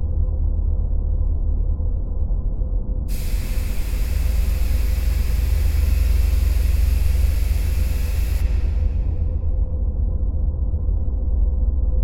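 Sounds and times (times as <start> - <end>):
white-noise static burst: 3.1 - 9.2.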